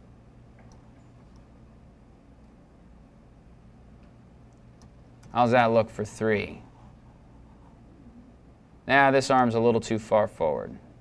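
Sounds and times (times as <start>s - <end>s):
steady low hum: 0.0s - 11.0s
computer mouse clicks: 0.6s - 1.5s, 4.0s - 5.4s.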